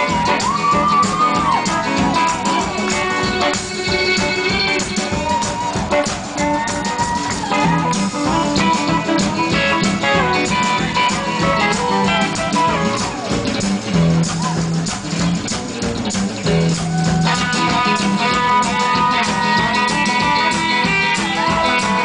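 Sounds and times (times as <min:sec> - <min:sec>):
drum kit steady beat: 0:00.0 - 0:22.0
electric guitar: 0:00.0 - 0:22.0
upright bass: 0:00.0 - 0:22.0.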